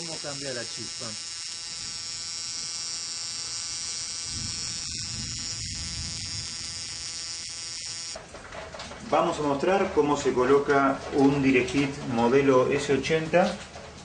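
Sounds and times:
ignition coil tester buzzing: 0:00.0 - 0:08.2.

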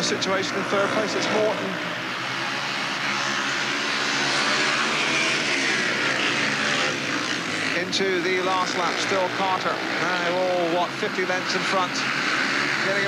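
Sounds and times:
motorcycles racing engine drone: 0:00.0 - 0:13.0.

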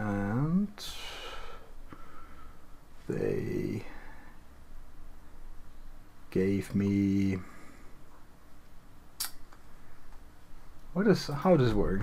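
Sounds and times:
faint room noise: 0:00.0 - 0:12.0
sharp click: 0:09.2 - 0:09.6.

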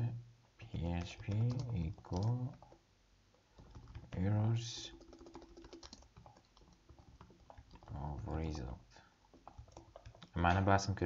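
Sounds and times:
computer keyboard typing: 0:00.7 - 0:02.8, 0:03.5 - 0:08.7, 0:09.3 - 0:10.4.

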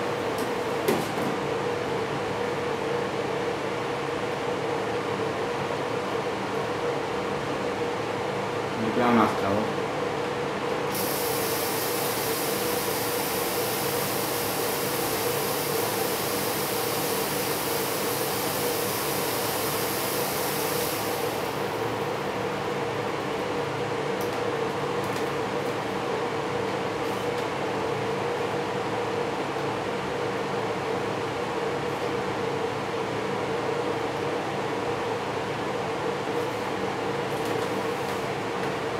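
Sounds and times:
fog machine hissing: 0:10.9 - 0:22.1.

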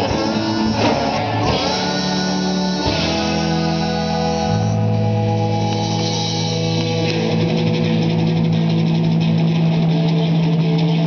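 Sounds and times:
distorted electric guitar note: 0:00.0 - 0:11.0.

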